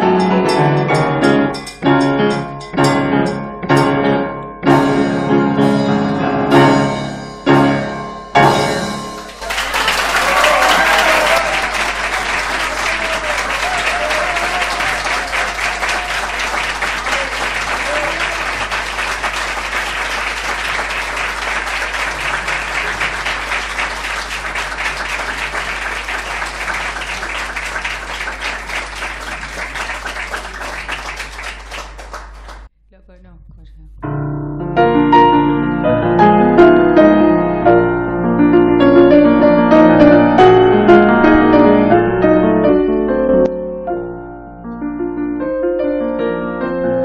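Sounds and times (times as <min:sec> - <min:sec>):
audience applauding: 0:09.2 - 0:32.7.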